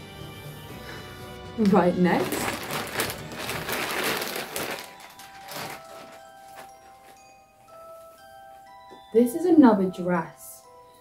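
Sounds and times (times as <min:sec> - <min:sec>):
soft background music with mallets: 0:00.0 - 0:11.0
plastic bag rustling: 0:01.6 - 0:08.4.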